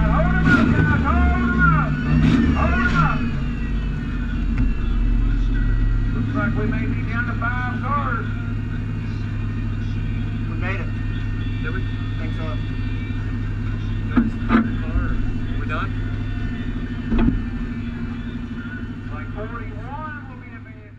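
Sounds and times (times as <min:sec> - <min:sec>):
car engine idling: 0:00.0 - 0:20.9.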